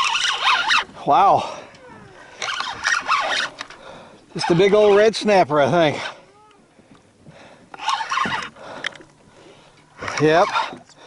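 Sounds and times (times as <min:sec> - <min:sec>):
fishing reel rasping: 0:00.0 - 0:05.2, 0:07.8 - 0:09.0, 0:10.0 - 0:11.0.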